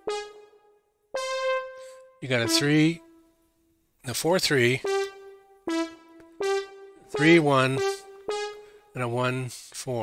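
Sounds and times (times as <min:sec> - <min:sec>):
piano-like notes: 0:00.0 - 0:03.2, 0:04.8 - 0:08.9.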